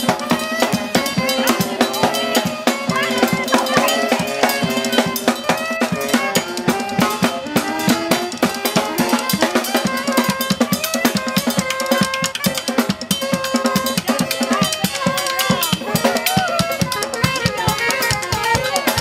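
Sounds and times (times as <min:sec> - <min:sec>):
drum kit playing: 0:00.0 - 0:19.0
saxophones holding long notes: 0:00.0 - 0:19.0.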